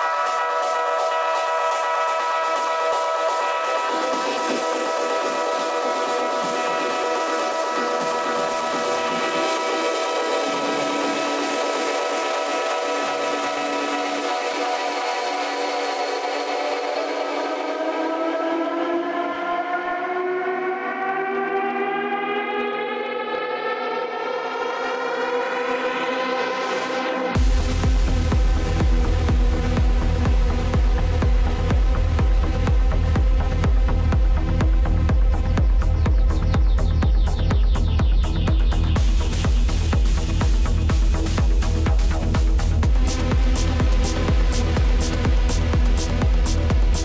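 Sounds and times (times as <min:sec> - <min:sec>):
rising synthesizer chord: 0:00.0 - 0:47.0.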